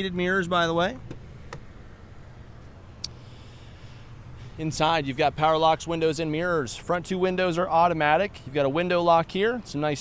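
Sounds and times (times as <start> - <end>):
car door latch click: 1.0 - 1.7.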